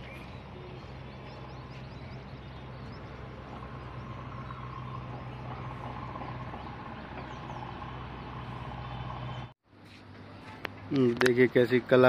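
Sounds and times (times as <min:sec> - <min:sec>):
low hum: 0:00.0 - 0:09.6
distant road traffic rumble: 0:00.0 - 0:12.0.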